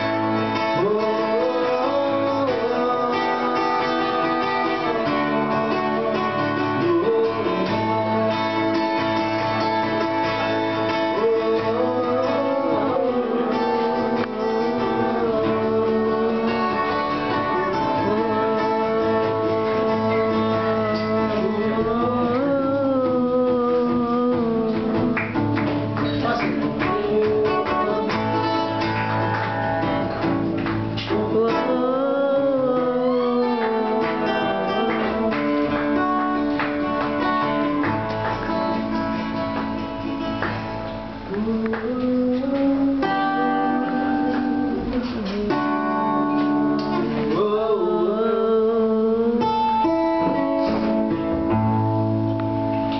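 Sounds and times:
man singing: 0:00.0 - 0:51.9
acoustic guitar strumming: 0:00.0 - 0:52.9.

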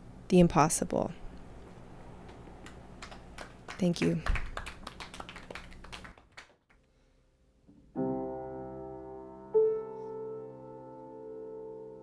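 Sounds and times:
light scattered applause: 0:02.6 - 0:06.7.

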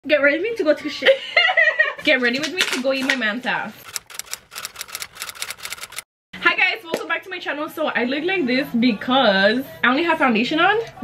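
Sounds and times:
rapid typewriter-like clicks: 0:03.8 - 0:06.0.

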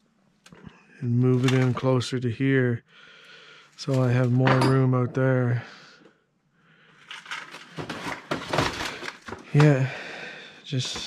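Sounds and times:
rummaging through boxes of parts: 0:01.3 - 0:01.9, 0:07.0 - 0:09.8.

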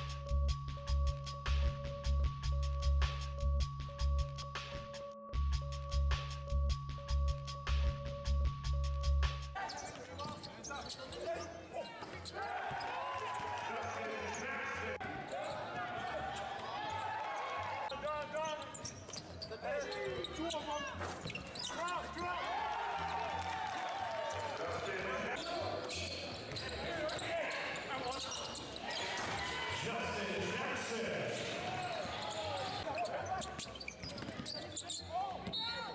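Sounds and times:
music with heavy beat: 0:00.0 - 0:09.6
shoe squeaks: 0:09.6 - 0:13.0, 0:15.1 - 0:17.0, 0:17.9 - 0:22.2, 0:25.3 - 0:29.3, 0:31.6 - 0:35.9.

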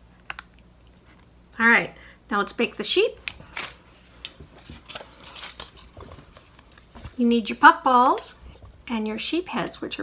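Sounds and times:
paper rustling and crinkling: 0:03.4 - 0:07.3.

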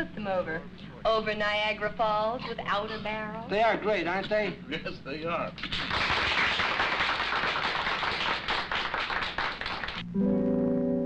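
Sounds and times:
audience applauding: 0:05.6 - 0:10.0.

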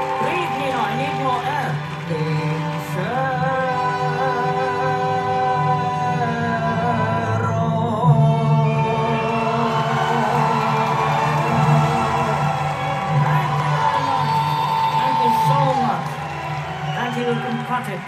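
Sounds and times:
woman singing opera in puppet voice: 0:00.0 - 0:12.0.

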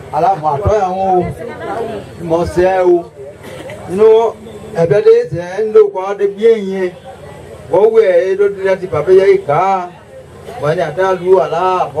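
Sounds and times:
man talking into a microphone: 0:00.0 - 0:01.4, 0:02.2 - 0:07.1, 0:07.7 - 0:12.0.

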